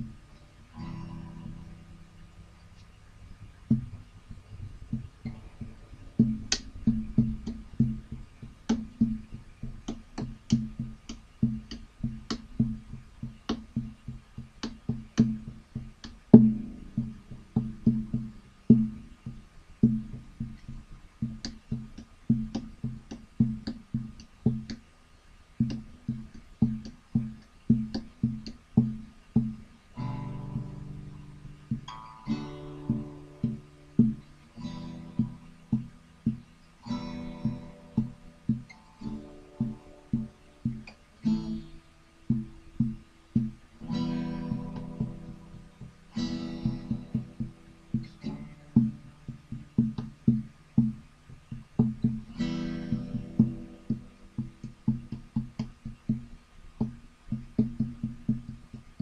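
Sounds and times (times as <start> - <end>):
strummed guitar chords: 0.0 - 24.9, 25.6 - 59.0
acoustic guitar picking: 0.0 - 59.0.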